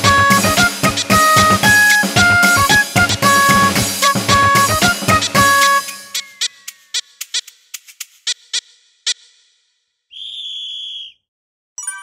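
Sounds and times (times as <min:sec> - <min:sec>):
shrill whistle blast: 0:10.1 - 0:11.2
bright chime ringing: 0:11.8 - 0:12.0.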